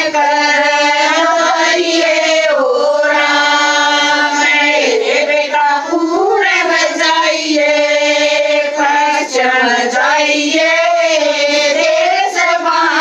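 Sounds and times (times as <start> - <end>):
women singing unaccompanied: 0.0 - 13.0.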